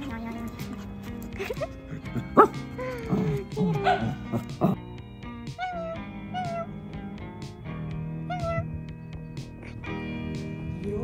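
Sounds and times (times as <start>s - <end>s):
background music: 0.0s - 11.0s
dog yipping and whining: 2.4s - 4.4s, 5.5s - 6.8s, 8.3s - 8.8s
dog barking loudly: 3.7s - 4.8s.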